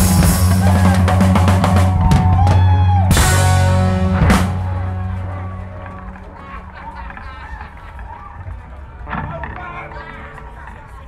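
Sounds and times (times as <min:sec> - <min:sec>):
audience voices: 0:00.0 - 0:11.0.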